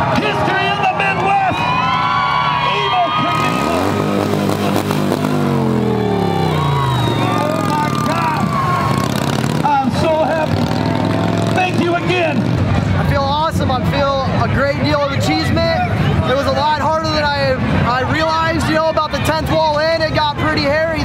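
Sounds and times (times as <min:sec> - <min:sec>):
spectators shouting and cheering: 0:00.0 - 0:21.0
motorcycle engine revving: 0:03.2 - 0:13.0.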